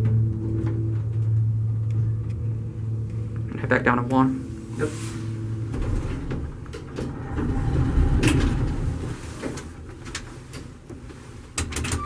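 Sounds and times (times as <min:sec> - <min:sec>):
elevator car rumbling: 0:00.0 - 0:12.0
elevator door sliding open: 0:04.7 - 0:12.0.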